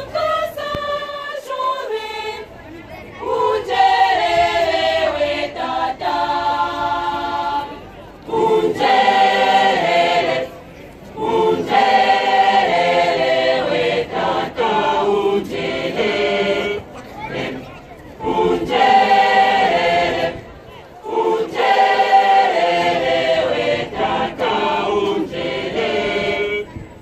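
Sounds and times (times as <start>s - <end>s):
choir singing a hymn: 0.0s - 27.0s.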